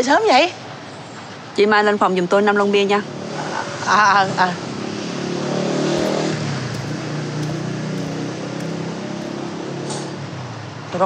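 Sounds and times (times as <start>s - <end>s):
passing cars and motorbikes: 3.1s - 10.2s.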